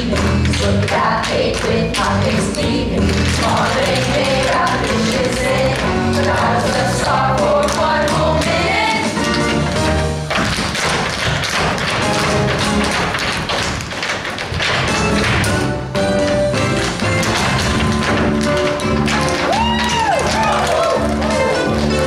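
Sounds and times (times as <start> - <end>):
tap dancing on wooden stage: 0.0 - 22.0
loud band music: 14.8 - 22.0.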